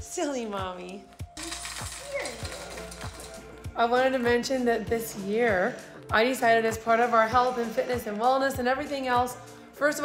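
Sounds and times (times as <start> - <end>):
background music with beat: 0.6 - 10.0
cereal pouring into bowl: 1.4 - 3.4.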